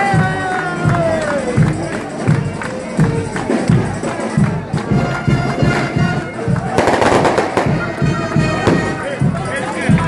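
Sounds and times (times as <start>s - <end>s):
regular drum beat: 0.0s - 10.0s
street band wind instruments: 0.0s - 10.0s.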